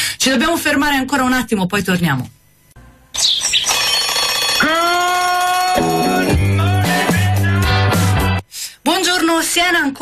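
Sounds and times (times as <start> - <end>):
jingle music: 3.4 - 8.0
rhythmic tune with bass: 4.6 - 8.4.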